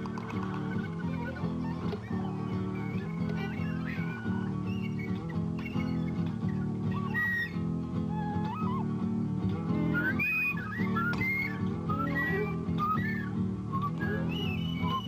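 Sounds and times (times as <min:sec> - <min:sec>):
low instrumental accompaniment: 0:00.0 - 0:14.5
wooden flute melody: 0:00.0 - 0:15.0.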